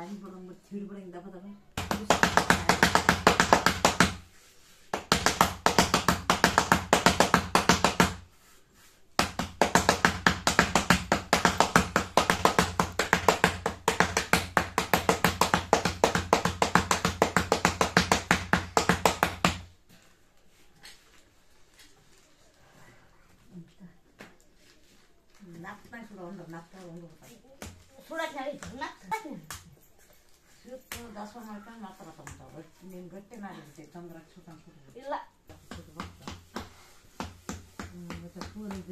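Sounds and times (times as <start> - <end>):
hand slapping dough: 1.8 - 19.8, 27.5 - 29.8, 30.8 - 31.4, 35.5 - 38.9.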